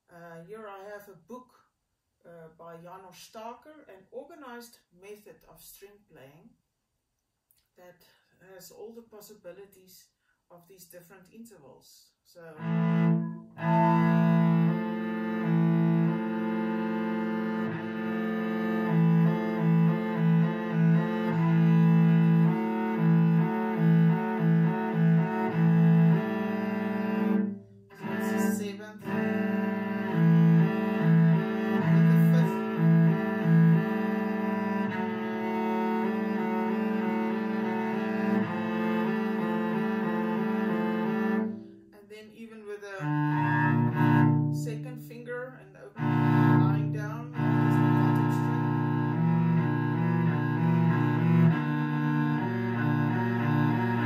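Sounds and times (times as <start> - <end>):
cello playing double stops: 12.6 - 41.7, 43.0 - 44.7, 46.0 - 54.0.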